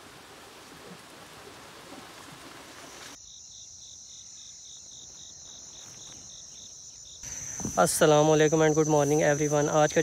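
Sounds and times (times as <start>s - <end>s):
insects trilling: 2.7s - 10.0s.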